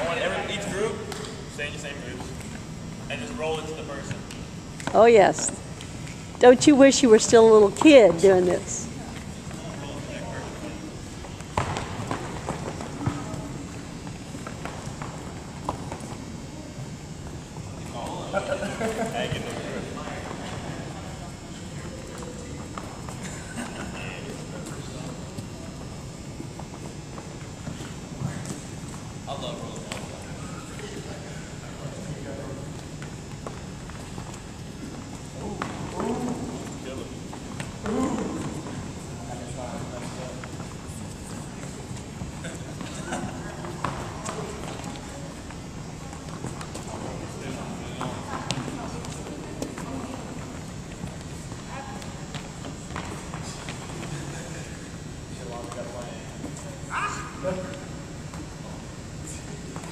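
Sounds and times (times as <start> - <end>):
people talking: 4.9 - 5.6, 6.4 - 11.0.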